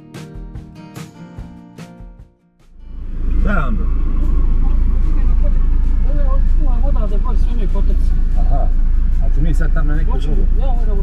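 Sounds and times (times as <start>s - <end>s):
low car cabin rumble: 2.8s - 11.0s
faint voices outside: 3.4s - 11.0s.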